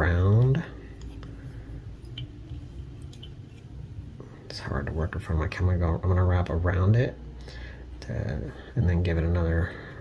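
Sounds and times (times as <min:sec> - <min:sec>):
low steady rumble: 0:00.0 - 0:10.0
light ticks of thread handling: 0:00.3 - 0:03.7.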